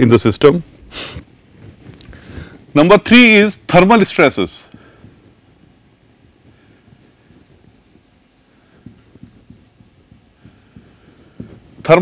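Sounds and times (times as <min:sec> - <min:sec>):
marker pen writing on whiteboard: 0:02.4 - 0:12.0.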